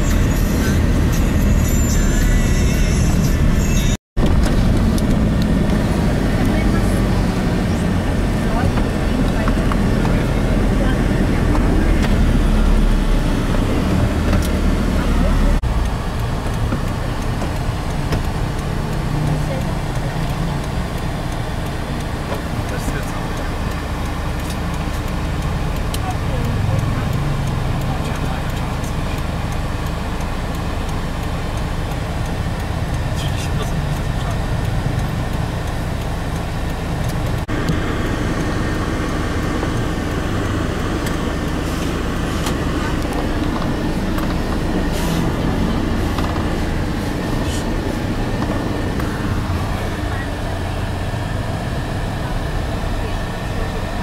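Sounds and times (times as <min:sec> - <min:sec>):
indistinct voices: 0:00.0 - 0:31.0, 0:31.6 - 0:54.0
car engine and road rumble: 0:00.0 - 0:54.0.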